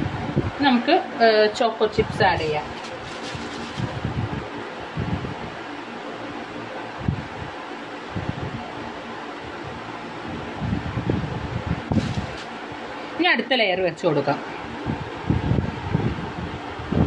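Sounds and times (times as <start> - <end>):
steady rushing noise: 1.9 - 13.3.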